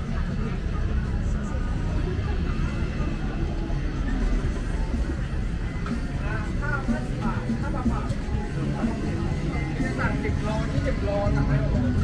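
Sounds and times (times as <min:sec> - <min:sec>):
many people talking: 0:00.0 - 0:12.0
music playing: 0:01.7 - 0:12.0.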